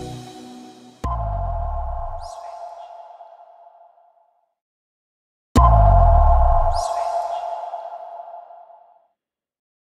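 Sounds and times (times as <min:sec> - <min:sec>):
deep booming low tone: 0:05.6 - 0:06.8.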